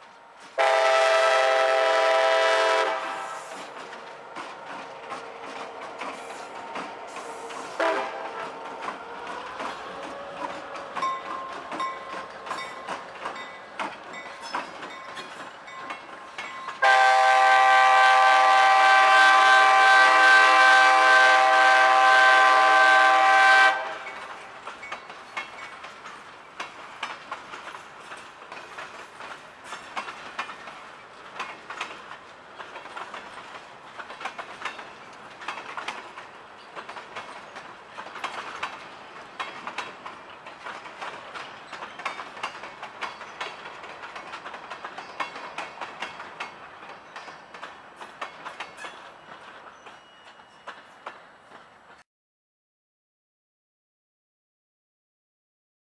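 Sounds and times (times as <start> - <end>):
multi-tone train horn blast: 0.6 - 3.6, 7.3 - 8.5, 16.8 - 24.2
wheels clicking over rail joints: 2.8 - 17.0, 24.0 - 52.0.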